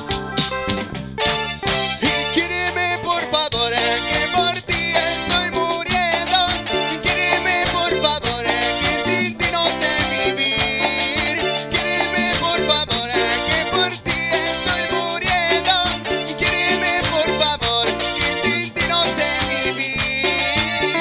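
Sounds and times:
upbeat dance band music: 0.0s - 21.0s
male singer: 2.0s - 21.0s.

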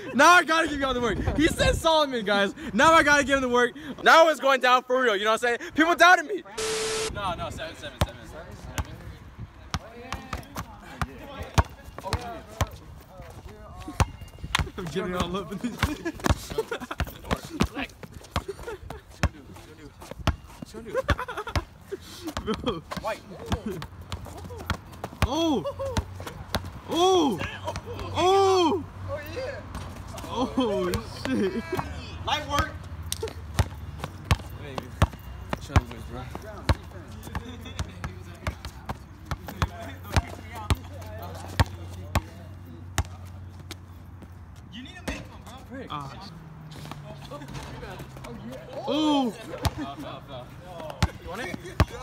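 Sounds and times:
voices calling out: 6.6s - 7.9s, 9.6s - 43.4s
basketball bouncing on asphalt: 8.0s - 26.8s, 29.6s - 45.6s, 50.7s - 52.0s.

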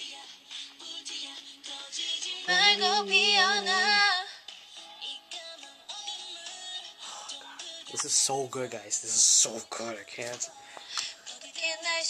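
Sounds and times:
woman singing slow song: 0.0s - 4.4s, 10.4s - 12.0s.

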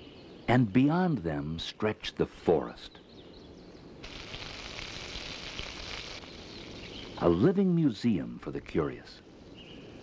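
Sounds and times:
soft high hiss: 0.0s - 10.0s
faint bird chirps: 6.2s - 7.4s, 9.4s - 10.0s.

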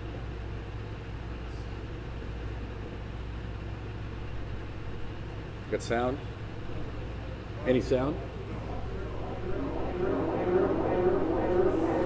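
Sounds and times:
low electrical hum: 3.8s - 12.0s
muffled voices: 6.9s - 12.0s.

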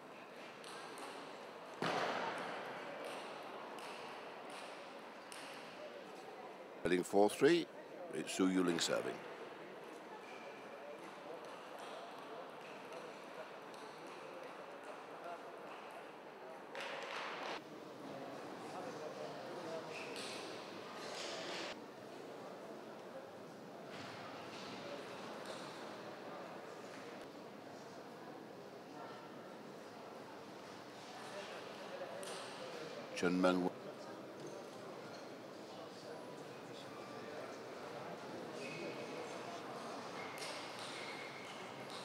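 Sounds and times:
crowd noise: 0.0s - 42.0s.

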